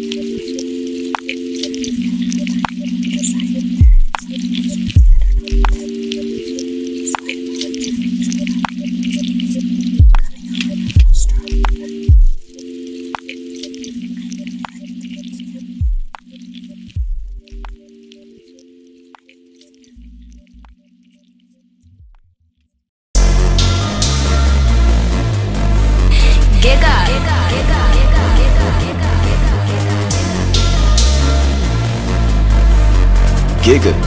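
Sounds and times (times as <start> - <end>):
held synth chords: 23.2 - 34.0.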